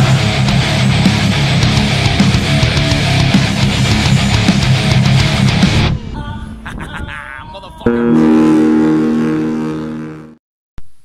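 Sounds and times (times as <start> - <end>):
distorted electric guitar chord ringing: 0.0 - 5.9, 7.9 - 10.3.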